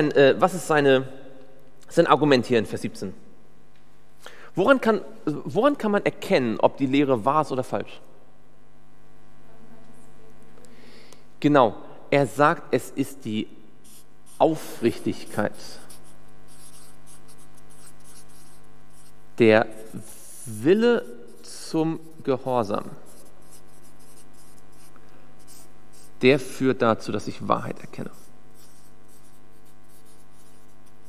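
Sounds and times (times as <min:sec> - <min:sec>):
electrical hum: 0:00.0 - 0:31.0
marker writing on paper: 0:13.8 - 0:26.2, 0:28.0 - 0:31.0.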